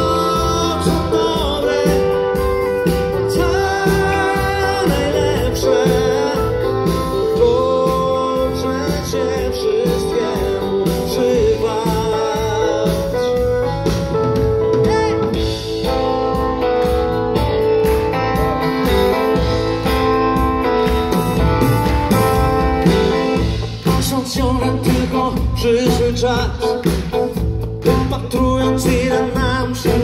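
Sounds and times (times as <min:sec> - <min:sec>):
live pop band through pa: 0:00.0 - 0:30.0.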